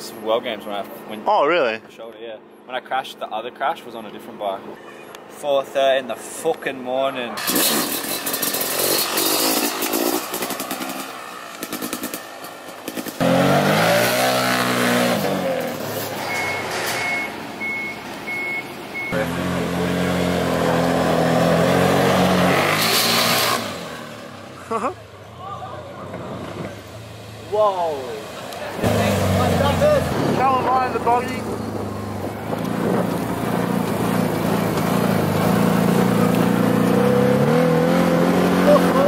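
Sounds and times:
dirt bike engine revving: 7.4 - 17.9, 19.0 - 24.8, 26.2 - 39.0
heavy vehicle engine revving: 7.4 - 24.8, 25.9 - 39.0
reversing alarm beeping: 16.2 - 19.2.

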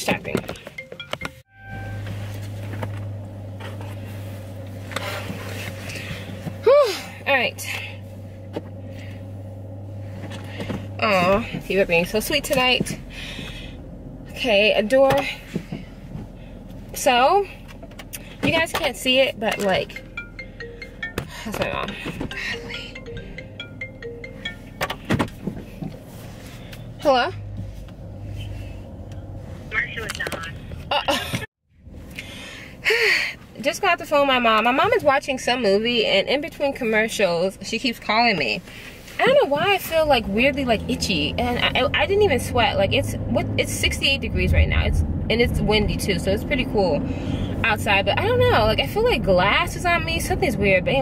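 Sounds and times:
car engine idling: 0.0 - 51.0
phone ringtone chiming melody: 0.6 - 2.0, 19.8 - 25.1
short electronic tones: 0.8 - 2.4.

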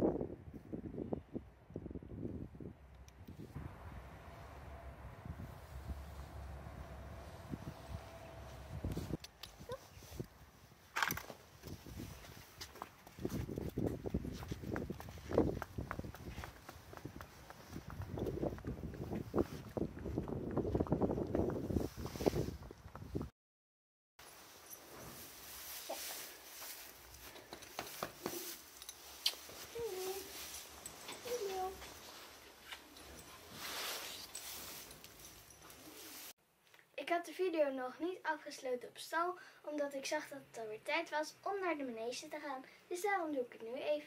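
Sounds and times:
hooves clip-clopping on concrete: 11.3 - 21.7, 27.0 - 33.6
soft rustling: 24.2 - 36.4.

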